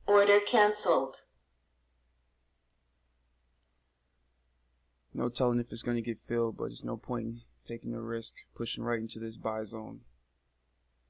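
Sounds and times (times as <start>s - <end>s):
computer mouse clicks: 2.2s - 2.8s, 3.6s - 3.8s.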